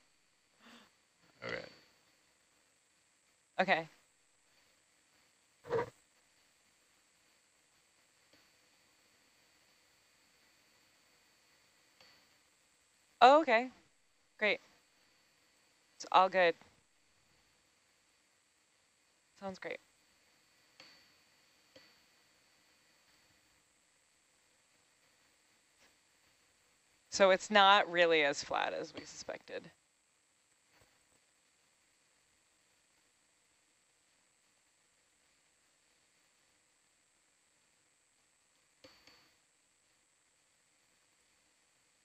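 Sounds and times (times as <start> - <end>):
faint steady hiss: 0.0 - 42.0
faint clicks with high ring: 20.8 - 22.1.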